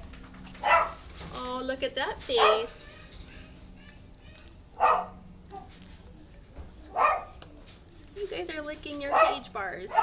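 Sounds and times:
dog barking: 0.6 - 1.0, 2.3 - 2.8, 4.8 - 5.7, 6.9 - 7.4, 9.1 - 10.0.

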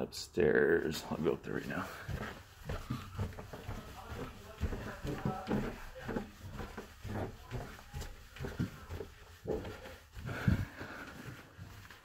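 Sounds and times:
footsteps on carpeted stairs: 0.9 - 12.0.

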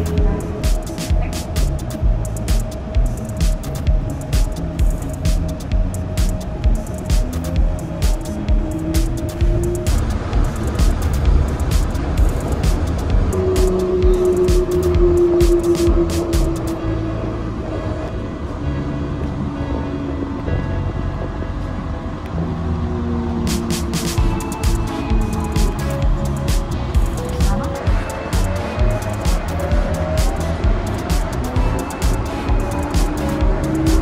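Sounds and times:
background music: 0.0 - 34.0
train running rumble: 0.0 - 34.0.

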